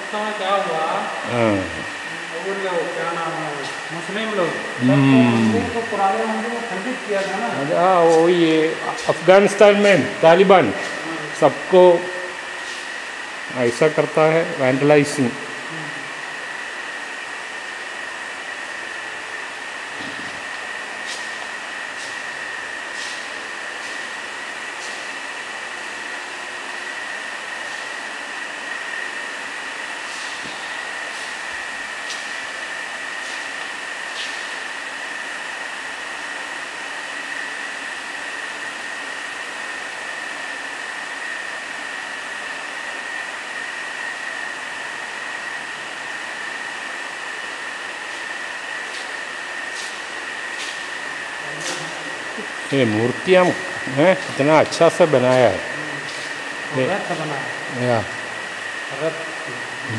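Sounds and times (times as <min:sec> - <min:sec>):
constant high-pitched whine: 0:00.0 - 0:59.9
steady hiss: 0:16.2 - 0:36.8.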